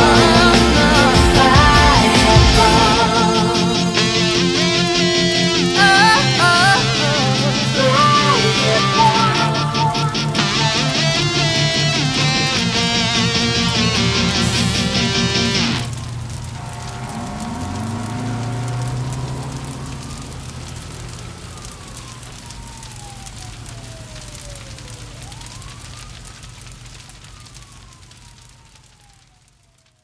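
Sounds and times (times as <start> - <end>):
fire crackling: 0.0 - 30.0
siren wailing: 0.0 - 30.0
low steady rumble: 15.8 - 22.3.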